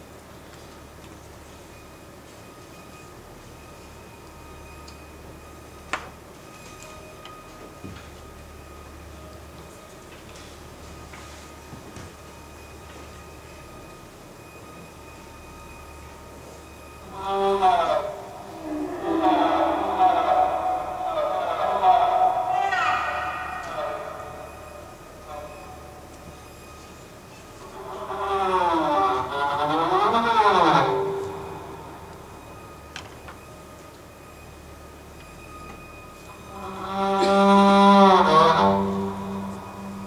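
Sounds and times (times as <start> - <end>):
thin sustained high tones: 12.6 - 29.2, 30.4 - 40.0
low rumbling drone: 17.0 - 26.8, 35.8 - 40.0.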